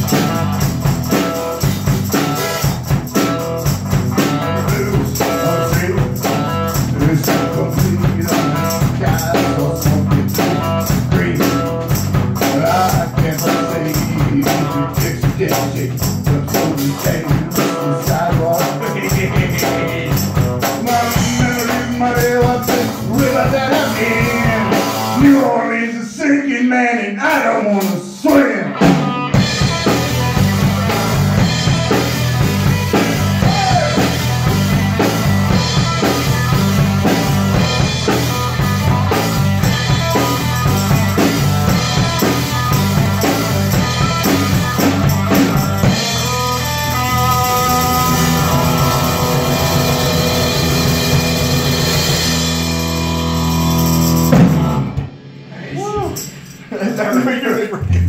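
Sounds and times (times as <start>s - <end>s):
tambourine shaking: 0.0s - 25.0s, 29.4s - 54.8s, 55.8s - 57.7s
rock band playing live: 0.0s - 25.5s, 27.8s - 58.0s
people laughing: 55.8s - 58.0s.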